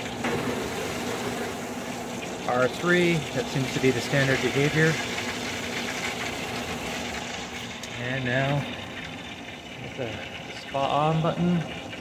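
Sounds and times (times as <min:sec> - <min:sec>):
pool equipment humming: 0:00.0 - 0:12.0.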